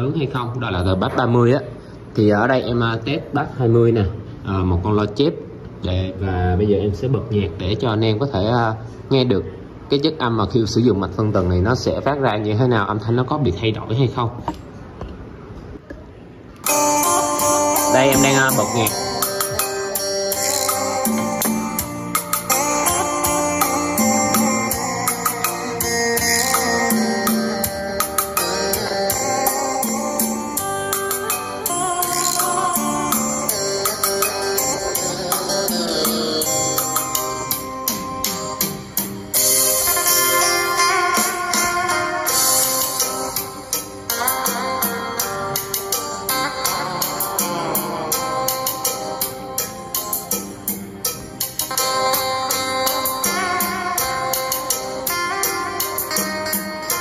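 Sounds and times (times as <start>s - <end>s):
guitar-led music over speakers: 15.8s - 57.0s.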